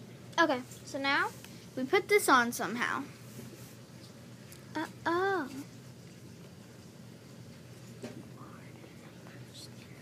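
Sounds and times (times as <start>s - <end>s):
faint whispering: 8.3s - 10.0s.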